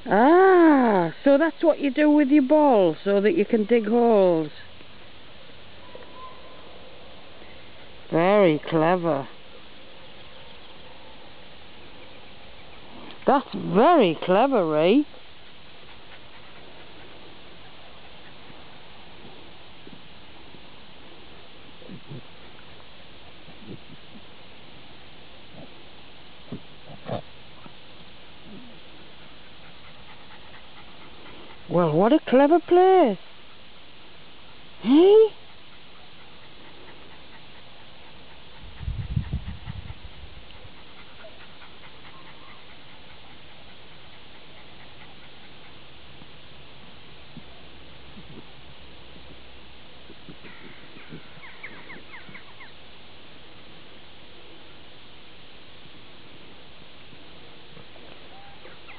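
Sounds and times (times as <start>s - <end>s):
steady background hiss: 0.0s - 58.9s
dog sniffing and snorting: 28.4s - 32.4s, 35.4s - 46.4s
bird chirping: 50.4s - 52.8s.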